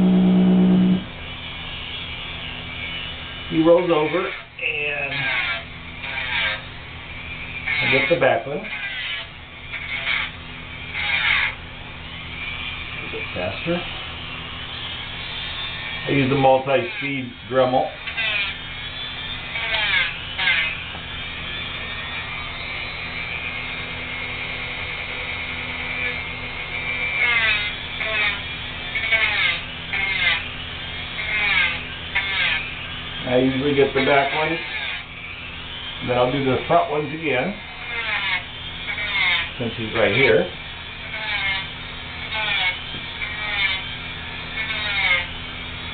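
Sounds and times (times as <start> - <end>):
rotary tool grinding toenail: 0.0 - 45.9.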